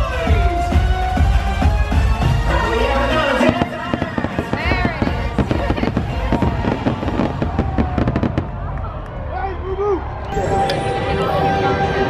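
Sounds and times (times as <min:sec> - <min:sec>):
music playing: 0:00.0 - 0:08.2, 0:10.1 - 0:12.0
fireworks bangs and crackles: 0:00.1 - 0:09.1.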